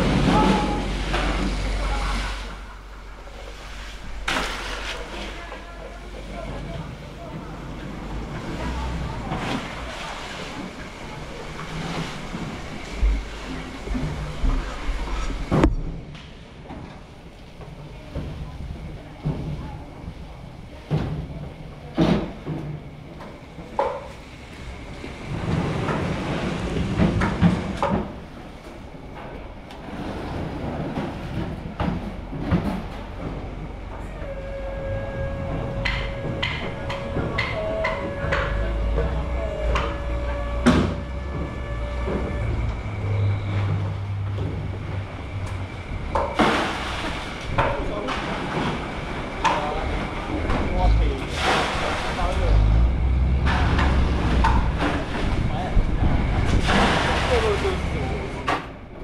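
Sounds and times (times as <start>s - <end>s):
indistinct voices: 0.0s - 15.6s, 32.8s - 59.0s
steady tone: 33.9s - 46.2s.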